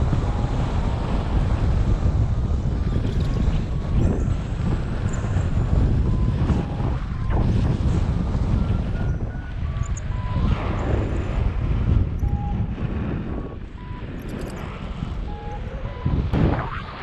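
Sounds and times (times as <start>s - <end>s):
wind rushing over microphone: 0.0s - 17.0s.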